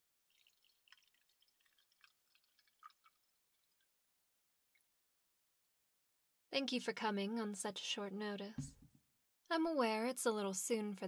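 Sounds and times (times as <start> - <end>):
tea pouring into cup: 0.3 - 3.9.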